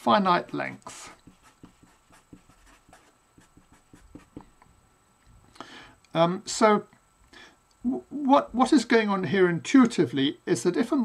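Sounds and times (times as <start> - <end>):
marker scratching on paper: 0.4 - 4.5.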